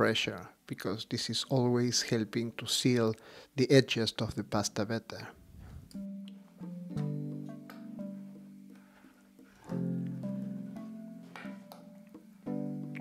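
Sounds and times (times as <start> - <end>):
background music: 5.4 - 13.0.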